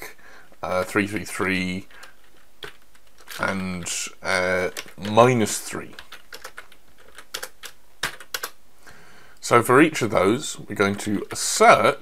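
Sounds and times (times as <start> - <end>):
computer keyboard typing: 1.8 - 8.6.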